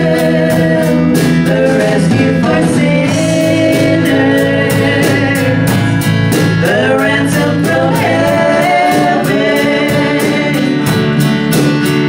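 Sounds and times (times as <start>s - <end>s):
people singing: 0.0s - 11.8s
acoustic guitars strummed: 0.0s - 12.0s.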